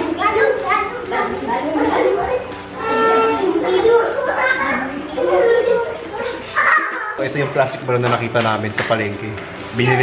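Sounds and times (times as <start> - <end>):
children chattering and calling: 0.0 - 8.0.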